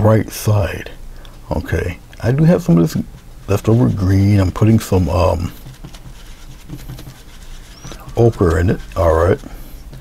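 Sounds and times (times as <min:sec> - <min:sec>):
low room hum: 0:00.0 - 0:10.0
painting tool scratching and tapping: 0:02.8 - 0:10.0.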